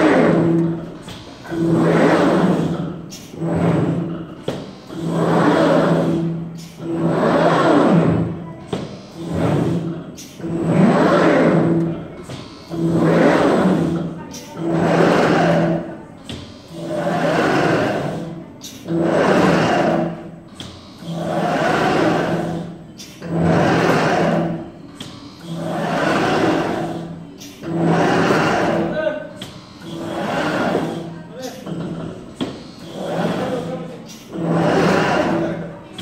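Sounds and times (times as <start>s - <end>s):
low motor hum: 0.0s - 36.0s
machine gantry moving: 0.0s - 36.0s.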